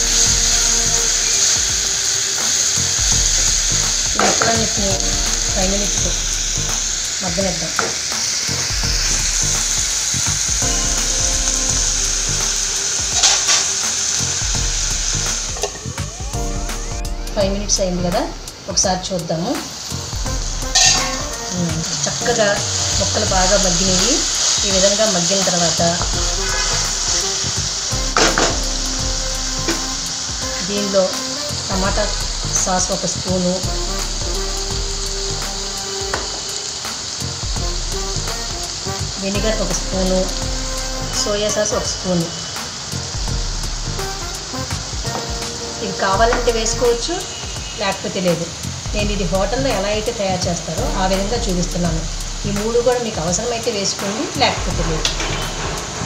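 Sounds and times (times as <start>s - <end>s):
vegetables sizzling in hot oil: 0.0s - 56.0s.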